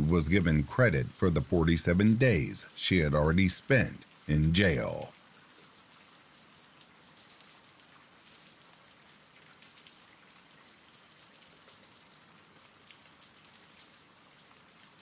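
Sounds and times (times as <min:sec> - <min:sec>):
raindrops ticking: 0:00.0 - 0:15.0
steady rain hiss: 0:00.0 - 0:15.0.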